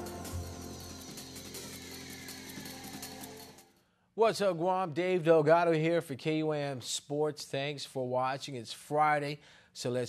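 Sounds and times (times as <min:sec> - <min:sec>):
sports theme music: 0:00.0 - 0:03.7.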